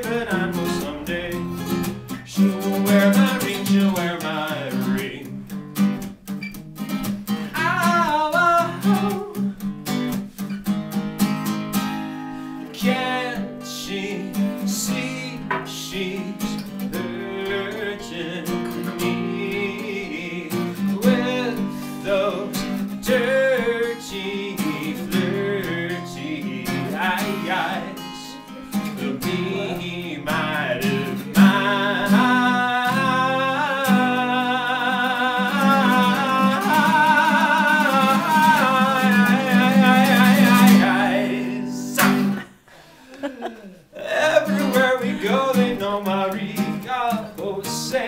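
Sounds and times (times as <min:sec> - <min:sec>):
man singing with vibrato: 0:00.0 - 0:05.5, 0:07.4 - 0:09.6, 0:12.6 - 0:48.0
acoustic guitar picked and strummed: 0:00.0 - 0:48.0.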